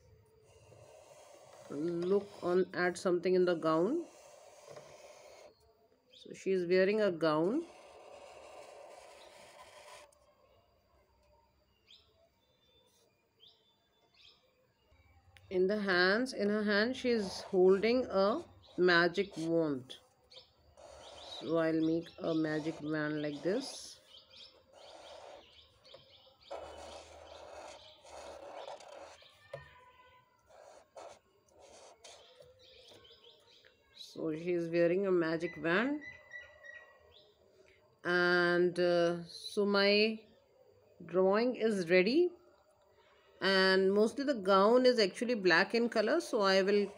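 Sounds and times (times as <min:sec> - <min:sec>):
small birds chirping: 0:00.0 - 0:37.8
marker scratching on paper: 0:00.4 - 0:05.6, 0:06.9 - 0:10.3, 0:16.5 - 0:19.9, 0:20.8 - 0:24.0, 0:24.7 - 0:33.1, 0:45.7 - 0:46.9.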